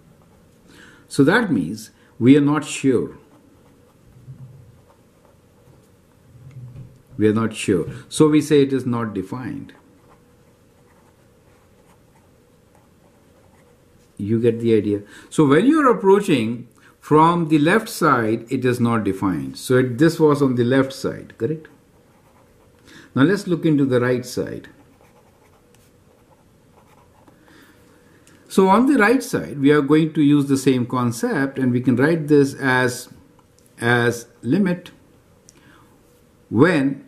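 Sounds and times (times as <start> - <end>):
marker pen scratching on paper: 3.3 - 5.9, 9.7 - 14.1, 22.0 - 22.8, 24.8 - 27.4.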